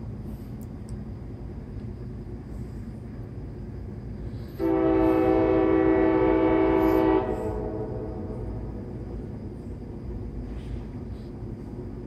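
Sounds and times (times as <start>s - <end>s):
train rumble: 0.0s - 12.0s
locomotive air horn blast: 4.6s - 8.6s.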